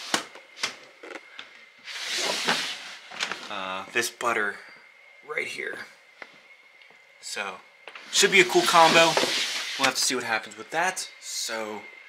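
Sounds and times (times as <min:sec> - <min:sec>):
plastic tub scraping out of shelf: 0:01.9 - 0:03.4, 0:08.1 - 0:10.0.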